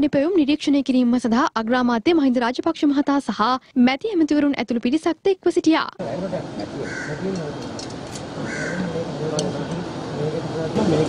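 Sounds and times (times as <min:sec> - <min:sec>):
bird calling: 0:06.6 - 0:07.6, 0:08.4 - 0:09.2.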